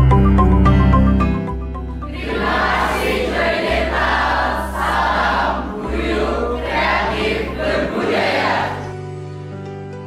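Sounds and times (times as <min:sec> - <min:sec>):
background music with bass line: 0:00.0 - 0:02.7.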